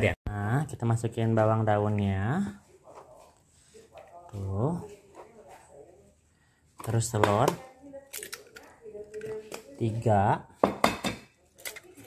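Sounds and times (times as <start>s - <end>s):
soft handling sounds: 2.5s - 7.0s
egg shell cracking: 7.2s - 9.8s, 11.5s - 12.0s.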